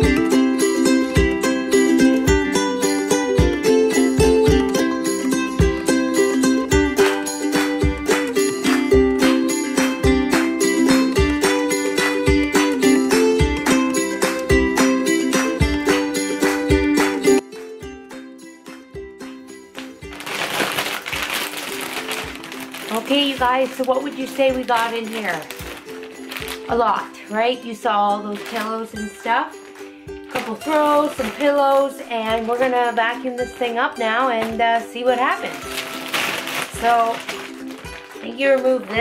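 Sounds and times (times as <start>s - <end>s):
light background music: 0.0s - 39.0s
plastic bag crinkling: 19.8s - 33.0s, 35.2s - 39.0s.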